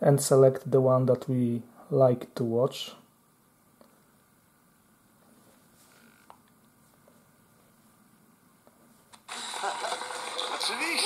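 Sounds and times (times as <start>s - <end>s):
tv broadcast from smartphone: 9.0s - 11.0s.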